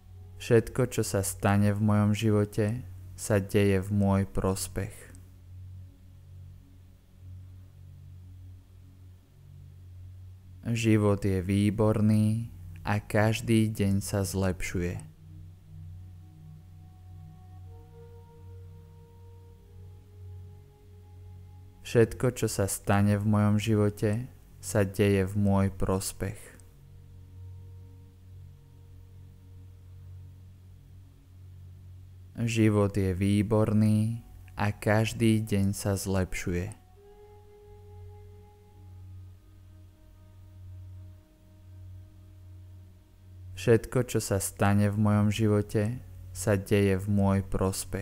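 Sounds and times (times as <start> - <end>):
low drone: 0.0 - 48.0.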